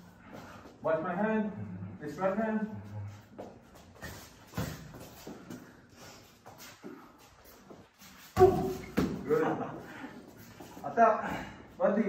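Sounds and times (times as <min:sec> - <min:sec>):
glove thuds and footwork: 0:04.0 - 0:05.8, 0:08.2 - 0:09.3.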